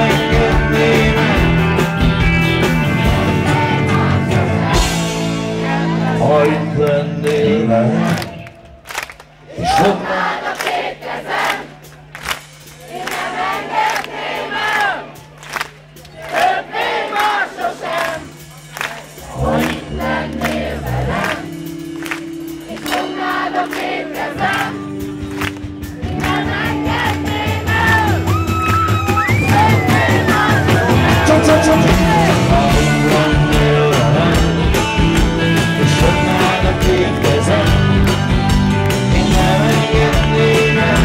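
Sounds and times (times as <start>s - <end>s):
rock band playing live: 0.0s - 7.9s, 18.2s - 41.0s
audience singing along: 0.0s - 8.8s, 9.5s - 12.1s, 12.7s - 15.2s, 16.1s - 28.2s, 29.3s - 41.0s.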